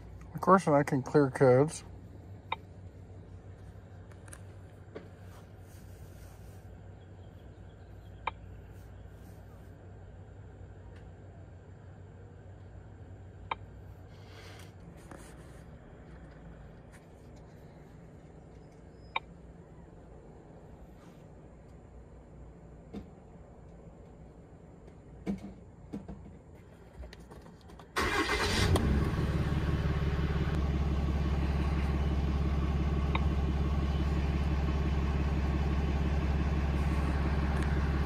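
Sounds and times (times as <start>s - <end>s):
steady low hum: 0.0s - 27.8s, 28.7s - 38.0s.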